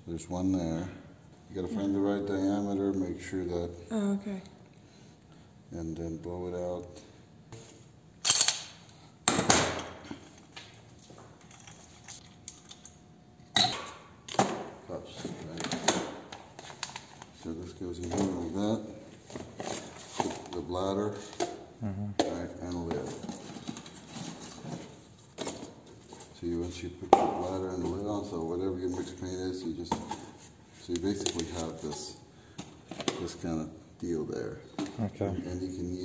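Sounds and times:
parts clinking and knocking: 8.2 - 9.9.

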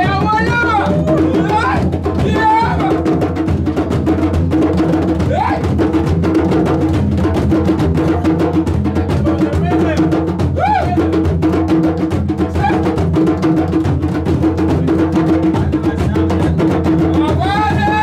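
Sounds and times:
djembe hand drums: 0.0 - 18.0
large stick-beaten drum: 0.0 - 18.0.

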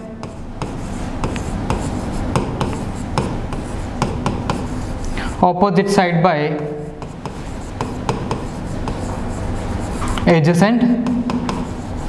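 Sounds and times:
low room hum: 0.0 - 12.0
pen scratching on board: 0.2 - 5.4, 6.6 - 10.4, 11.2 - 12.0.

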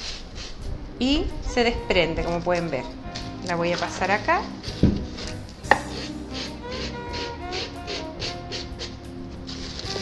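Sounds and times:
background music with steady beat: 0.1 - 10.0.

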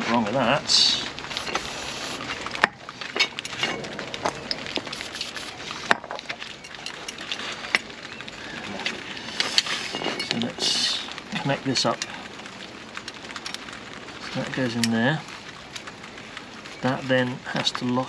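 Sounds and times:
rain hiss: 0.1 - 18.0.

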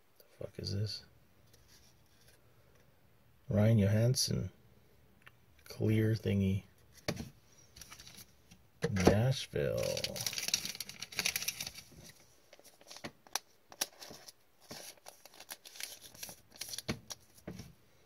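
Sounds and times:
plastic card sleeve crinkling: 7.8 - 17.7.

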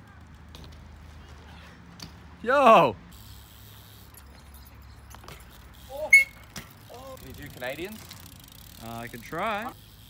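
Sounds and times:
bike rolling over concrete: 0.1 - 2.3, 3.1 - 10.0
faint clicks from bike: 3.2 - 10.0.

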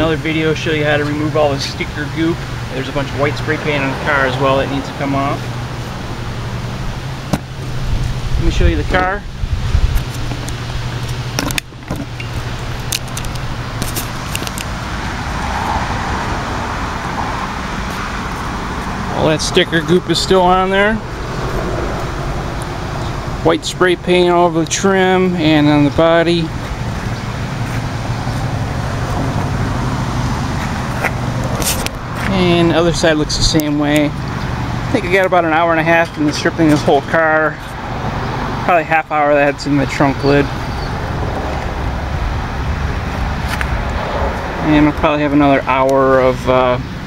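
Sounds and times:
road vehicle rumble: 0.0 - 47.0.

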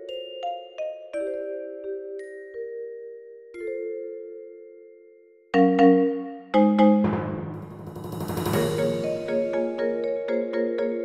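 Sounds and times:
mallet keyboard chords: 5.6 - 11.0
timpani roll: 7.0 - 10.0
rolled cymbal: 7.2 - 10.0.

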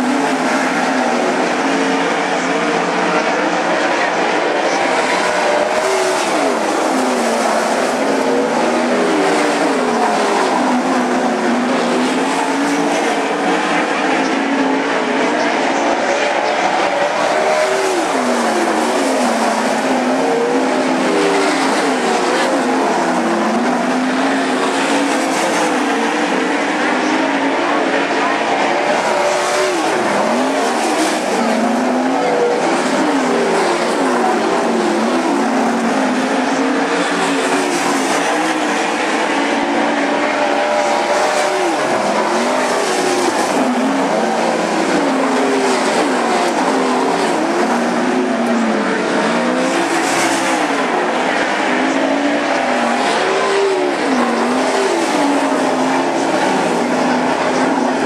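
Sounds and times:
race car engines running hard: 0.0 - 58.0.

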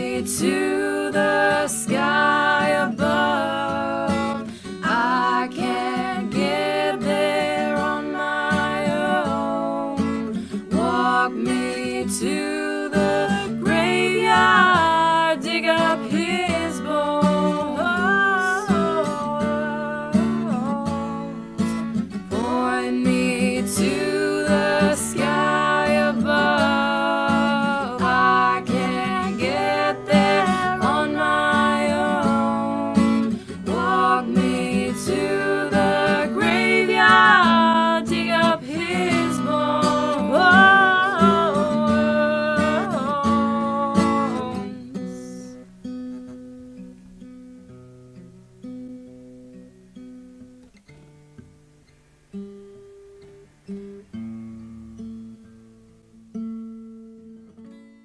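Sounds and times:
acoustic guitar music: 0.0 - 58.0.

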